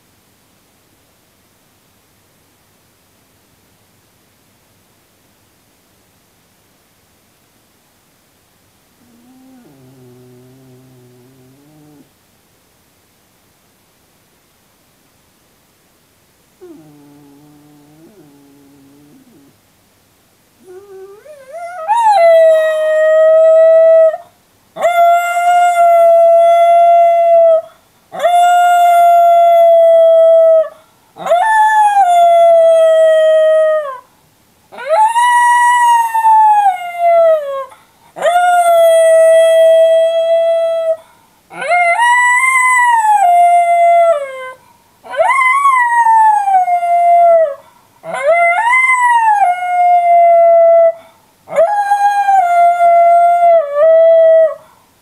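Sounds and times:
dog howling: 9.0s - 12.1s, 16.6s - 19.5s, 20.6s - 24.2s, 34.8s - 54.6s.

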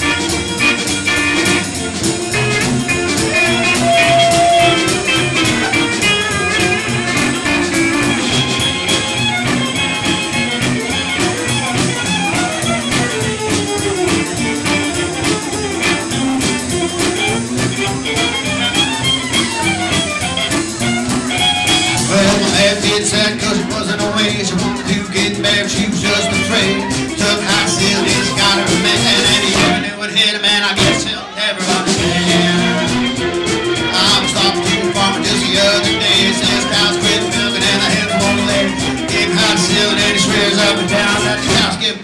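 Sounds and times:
pedal steel guitar: 0.0s - 22.2s
electric guitar: 0.0s - 30.0s, 30.8s - 42.0s
drum kit: 0.0s - 42.0s
fiddle: 0.0s - 42.0s
upright bass: 0.0s - 42.0s.

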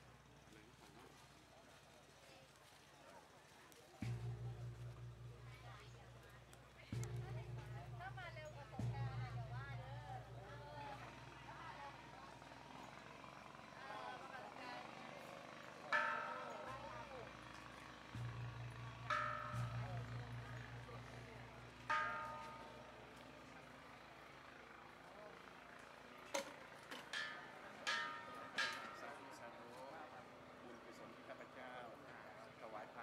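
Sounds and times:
faint voices: 0.0s - 33.0s
metal bells struck: 4.0s - 13.0s, 15.6s - 23.3s, 27.1s - 29.4s
low steady hum: 4.0s - 13.8s, 15.9s - 24.8s.

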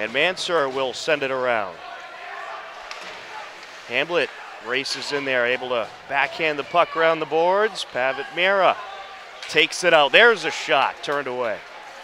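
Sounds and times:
ice rink noise: 0.0s - 12.0s.

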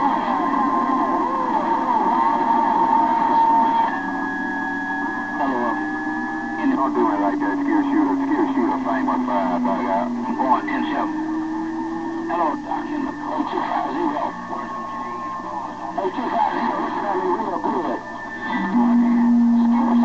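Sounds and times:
garbled radio voices: 0.0s - 20.0s
radio whistle tones: 0.0s - 20.0s.

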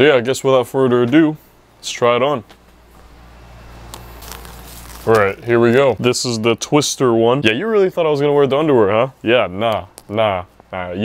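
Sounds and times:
steady low hum: 0.0s - 11.0s
clothing rustling: 2.6s - 6.4s.

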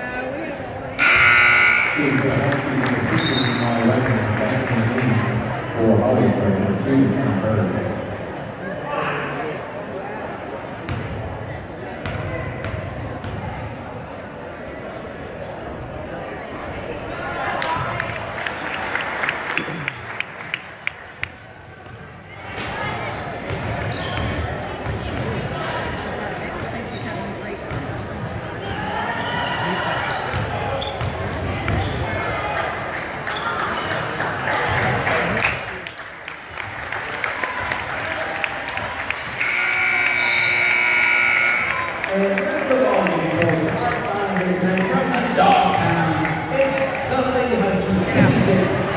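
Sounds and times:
crowd talking and calling out: 0.0s - 48.9s
electronic game buzzer: 1.0s - 2.2s, 39.4s - 41.9s.

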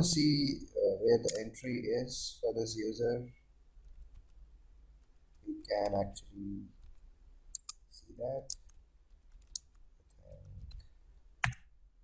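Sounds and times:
keyboard typing: 11.4s - 11.7s.

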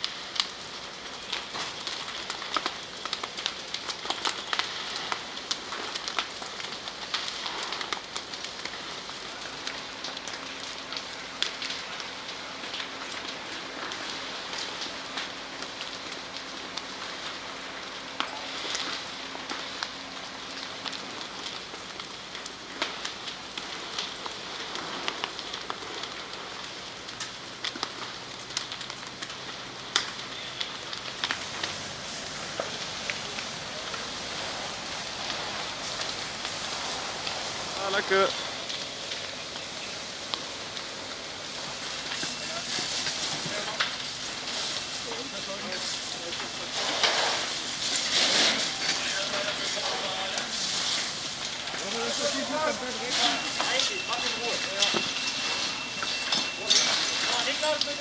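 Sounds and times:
large fire crackling and popping: 0.0s - 58.0s.

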